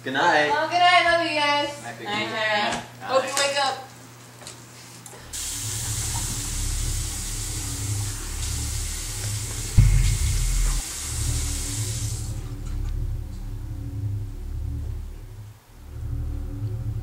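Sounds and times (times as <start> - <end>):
low droning music: 5.3 - 17.0
sink tap running: 5.4 - 12.4
deep boom: 9.6 - 15.3.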